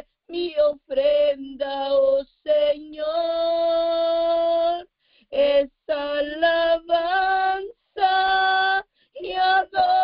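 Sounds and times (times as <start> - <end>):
woman singing unaccompanied: 0.0 - 10.0.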